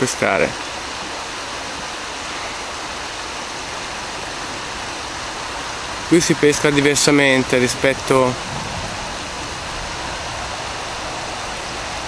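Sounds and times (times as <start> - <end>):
river water rushing over stones: 0.0 - 12.0.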